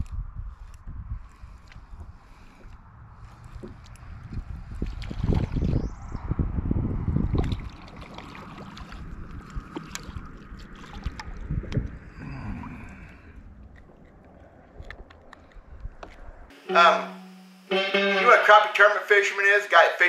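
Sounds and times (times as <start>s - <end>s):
water splashing and sloshing: 4.6s - 5.8s, 7.2s - 15.3s.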